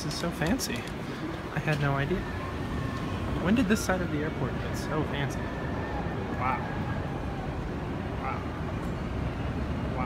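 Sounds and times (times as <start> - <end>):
airport terminal rumble: 0.0 - 10.0.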